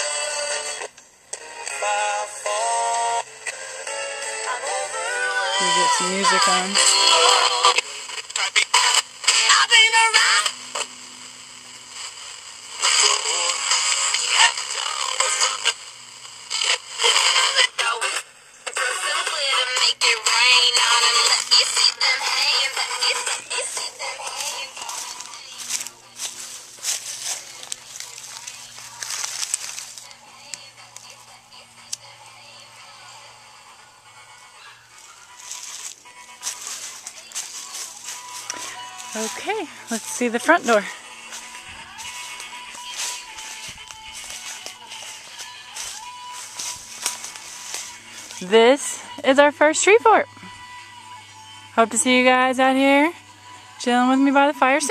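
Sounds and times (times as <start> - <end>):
music with singing from a radio: 0.0 - 54.9.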